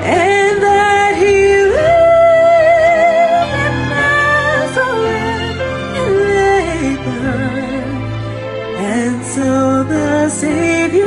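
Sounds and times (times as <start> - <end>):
woman singing: 0.0 - 8.0, 8.8 - 11.0.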